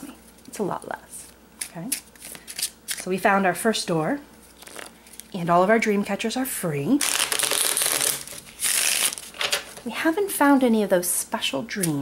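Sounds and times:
playing cards rustling: 4.4 - 5.3, 7.0 - 9.8.

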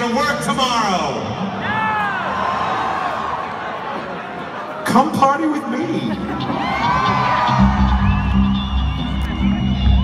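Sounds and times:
crowd whooping and cheering: 1.5 - 4.8, 6.1 - 10.0
band playing sustained bass and guitar: 6.2 - 10.0.

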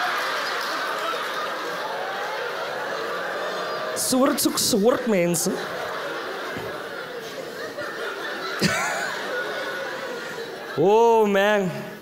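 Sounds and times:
audience laughing: 0.0 - 11.4.

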